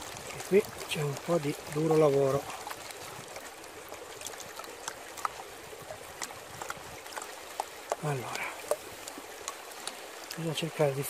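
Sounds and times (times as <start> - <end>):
water swishing in a pan: 0.0 - 11.0.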